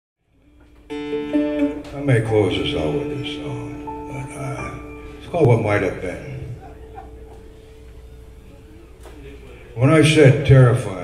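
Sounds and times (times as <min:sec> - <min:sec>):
acoustic guitar notes: 0:00.5 - 0:09.8.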